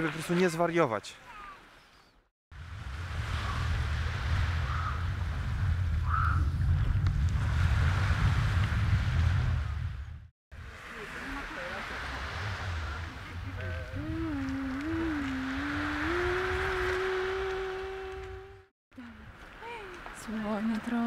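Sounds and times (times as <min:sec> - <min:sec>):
waves washing onto sand: 0:02.6 - 0:05.8, 0:10.6 - 0:18.5
wind on microphone: 0:02.6 - 0:10.3, 0:12.0 - 0:19.4.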